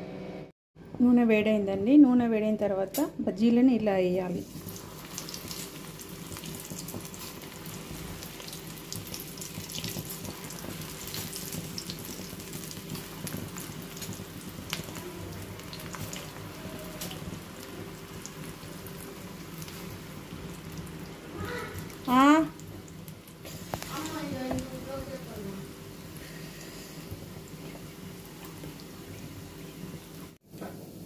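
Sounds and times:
leaves deep-frying in hot oil: 4.0s - 31.0s.

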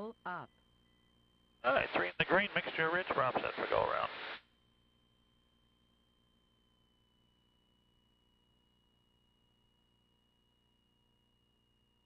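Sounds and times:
voice: 0.0s - 0.5s, 1.6s - 4.3s
intercom hiss: 1.7s - 4.4s.

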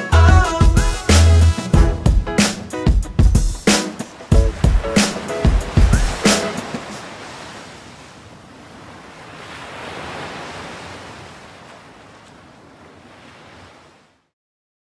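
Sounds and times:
ocean surf rushing: 1.5s - 14.1s.

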